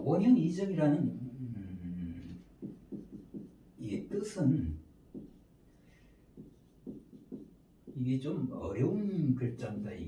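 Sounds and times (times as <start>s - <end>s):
marker writing on whiteboard: 2.3s - 4.4s, 5.0s - 8.4s.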